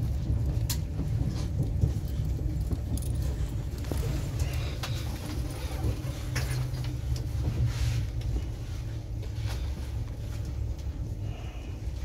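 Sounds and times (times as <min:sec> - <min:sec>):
train wheels rumbling on track: 0:00.0 - 0:12.0.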